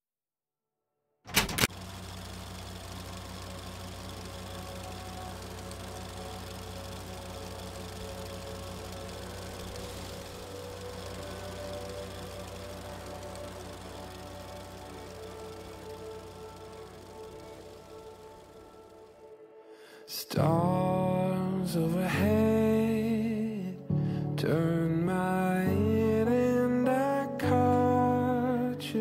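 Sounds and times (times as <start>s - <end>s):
sharp click: 1.3s - 1.7s
film projector running: 1.3s - 19.4s
faint soft music: 4.1s - 29.0s.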